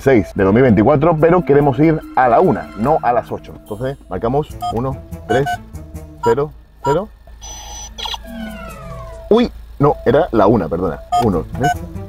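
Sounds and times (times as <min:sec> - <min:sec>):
falling electronic tone: 0:00.0 - 0:11.9
electronic beeps: 0:00.4 - 0:11.9.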